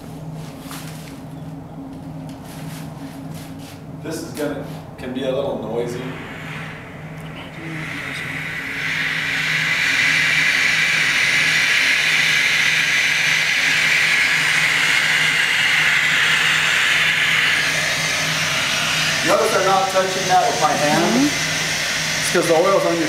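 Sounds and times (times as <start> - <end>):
gas hissing from a hose: 5.9 - 23.0.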